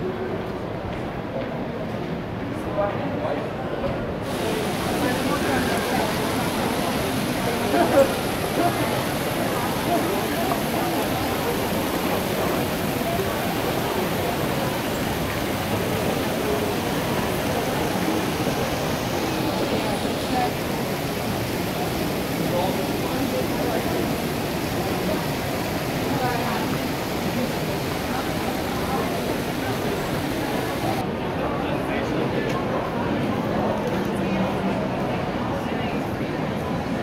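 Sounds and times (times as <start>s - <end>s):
indoor fountain splashing: 0.0s - 37.0s
many indistinct voices: 0.0s - 37.0s.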